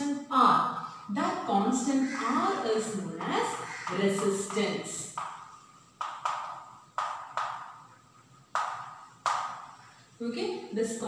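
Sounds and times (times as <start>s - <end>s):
chalk writing on blackboard: 2.1s - 10.1s.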